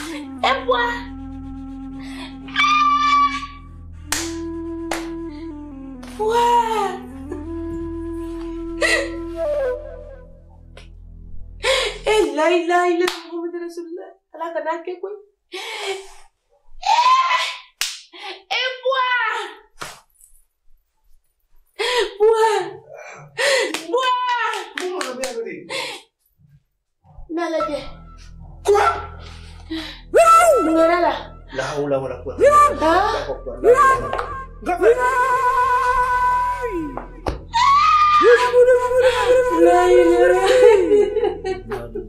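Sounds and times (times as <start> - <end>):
somber music with low note: 0.0 - 13.8, 27.1 - 42.0
sharp smacks: 19.8 - 20.1
woman crying wail: 37.6 - 41.6.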